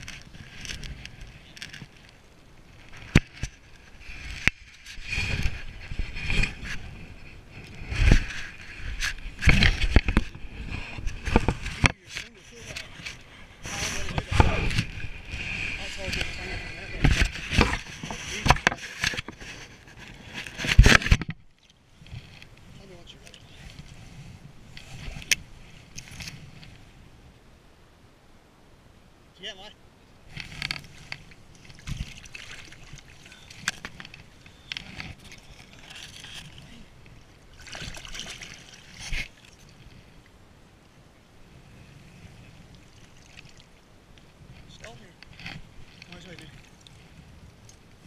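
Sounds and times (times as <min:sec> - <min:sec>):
rubbing on microphone: 0:02.8 - 0:21.3
water splashing: 0:30.8 - 0:40.0, 0:42.6 - 0:43.9.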